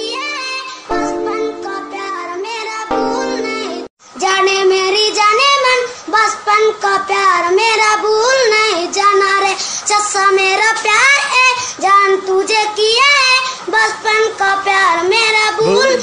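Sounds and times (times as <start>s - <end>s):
pop backing music: 0.0s - 3.9s
child singing: 0.0s - 16.0s.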